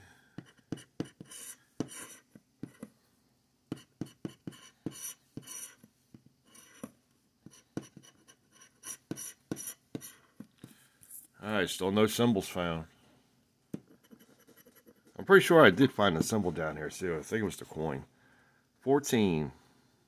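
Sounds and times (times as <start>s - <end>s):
lottery ticket scratching: 0.5s - 2.8s.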